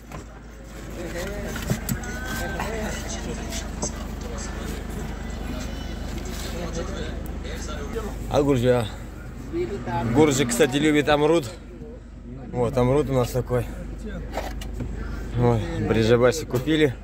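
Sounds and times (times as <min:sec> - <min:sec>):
faint indistinct voices: 0:00.0 - 0:17.0
steady low hum: 0:00.0 - 0:17.0.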